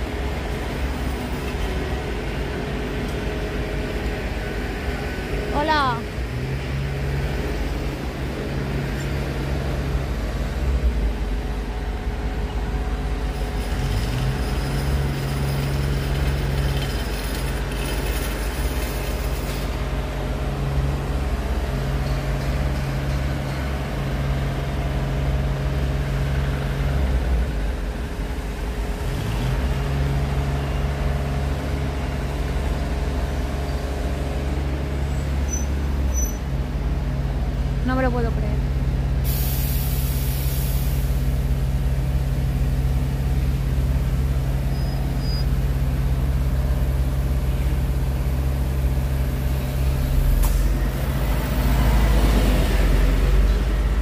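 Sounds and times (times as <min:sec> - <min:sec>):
heavy diesel machinery drone: 0:00.0 - 0:54.0
high hiss of air: 0:39.2 - 0:41.3.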